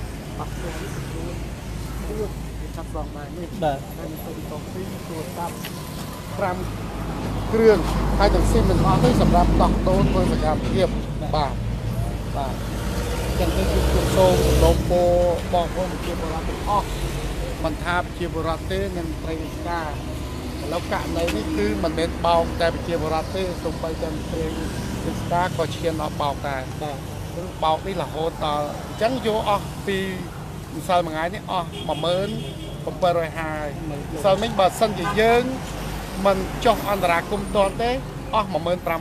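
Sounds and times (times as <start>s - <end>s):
person speaking into microphones: 0.4s - 6.7s, 7.4s - 12.6s, 20.6s - 39.0s.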